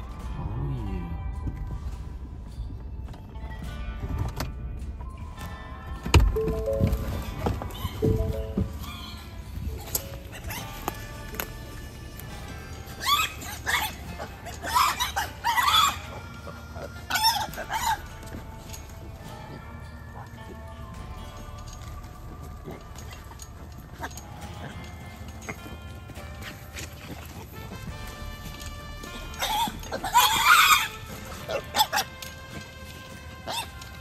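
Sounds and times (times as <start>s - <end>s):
hogs squealing: 7.7s - 25.7s, 26.4s - 34.0s.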